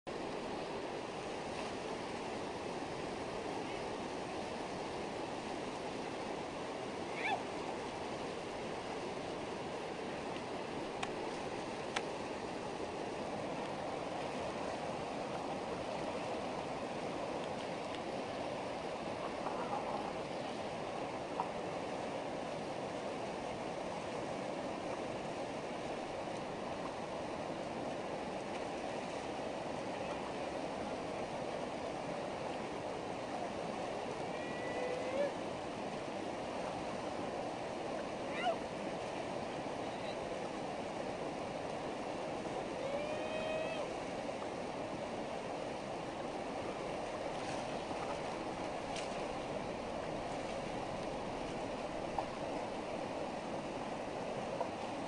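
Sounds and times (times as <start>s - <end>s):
whitewater rushing: 0.1s - 55.0s.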